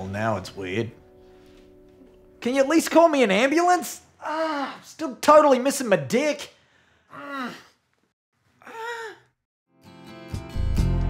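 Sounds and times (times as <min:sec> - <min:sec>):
man moaning in pain: 0:04.2 - 0:04.9, 0:07.1 - 0:07.7, 0:08.6 - 0:09.2.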